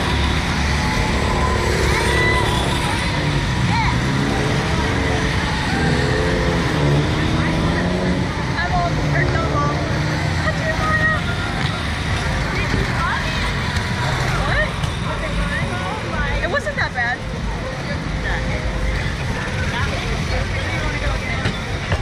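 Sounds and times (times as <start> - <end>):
voices: 0.0 - 22.0.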